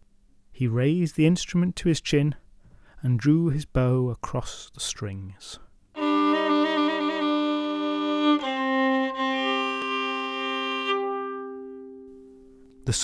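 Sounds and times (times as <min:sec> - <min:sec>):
solo fiddle bowed: 0:06.0 - 0:12.4.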